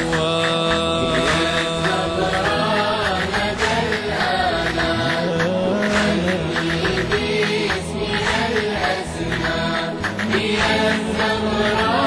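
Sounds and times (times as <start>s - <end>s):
steady low drone: 0.0s - 12.0s
voices chanting in layers: 0.0s - 12.0s.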